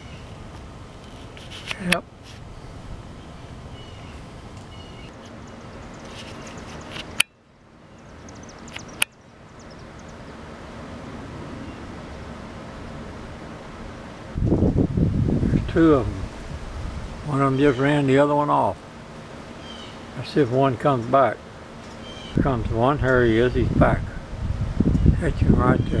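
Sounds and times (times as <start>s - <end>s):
outdoor background hiss: 0.0s - 26.0s
man's voice: 22.4s - 24.2s, 25.2s - 26.0s.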